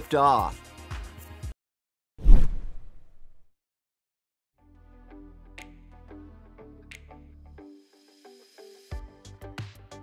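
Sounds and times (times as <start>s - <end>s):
whoosh: 2.2s - 3.5s.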